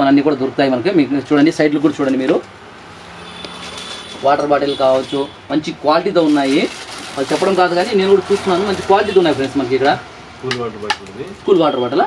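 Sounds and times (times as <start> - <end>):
man talking: 4.2 - 12.0.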